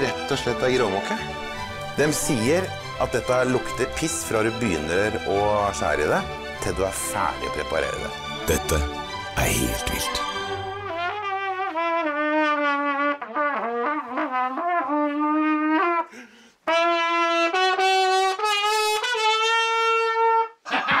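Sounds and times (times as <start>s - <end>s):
brass instrument melody: 0.0s - 20.6s.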